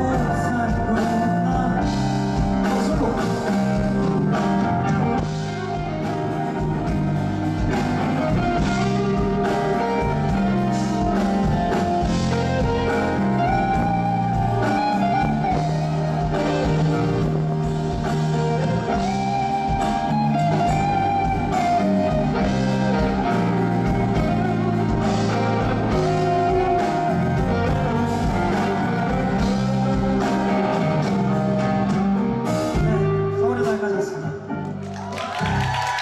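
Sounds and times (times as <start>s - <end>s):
bass line: 0.0s - 33.6s
electric keyboard playing: 0.0s - 35.5s.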